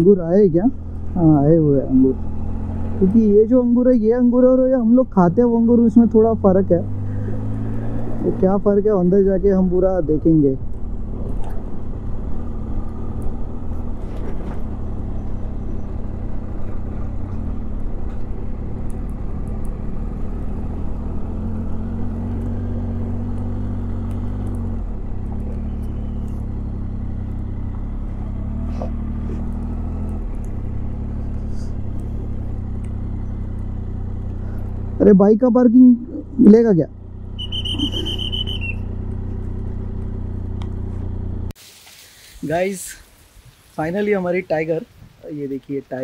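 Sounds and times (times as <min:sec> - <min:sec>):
motorcycle engine running at low revs: 0:00.0 - 0:41.6.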